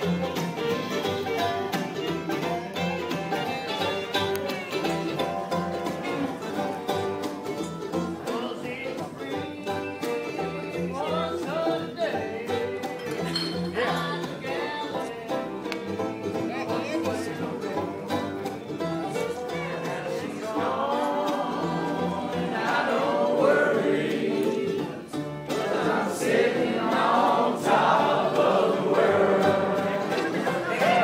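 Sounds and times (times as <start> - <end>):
acoustic guitar: 0.0 - 31.0
fiddle: 0.0 - 31.0
upright bass: 0.0 - 31.0
voices singing together: 8.0 - 16.4, 17.0 - 31.0.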